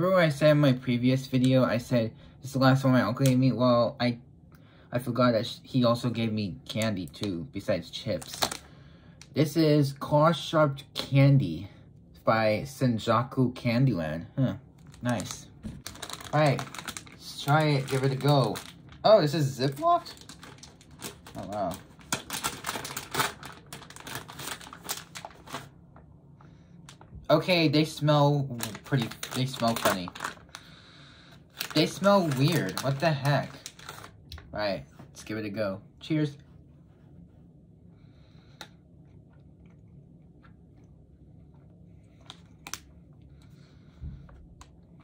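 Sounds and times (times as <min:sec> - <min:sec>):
plastic bag crinkling: 0:07.9 - 0:08.7, 0:14.8 - 0:26.0, 0:27.8 - 0:30.8, 0:31.4 - 0:34.7
chewing soft candy: 0:38.6 - 0:43.6.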